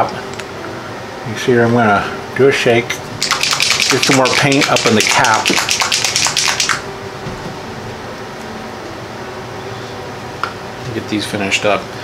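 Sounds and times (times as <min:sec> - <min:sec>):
steady room hum: 0:00.0 - 0:12.0
paint pot rattling: 0:03.2 - 0:06.8.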